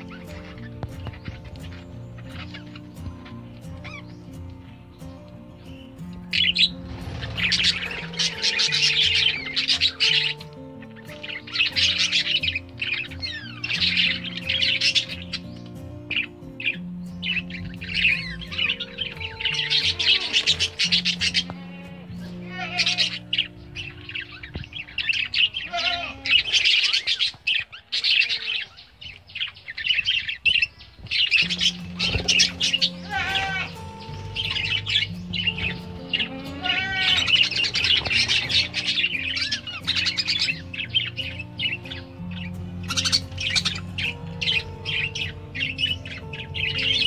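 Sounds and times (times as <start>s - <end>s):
background music: 0.0s - 47.0s
budgerigars chirping: 0.0s - 47.0s.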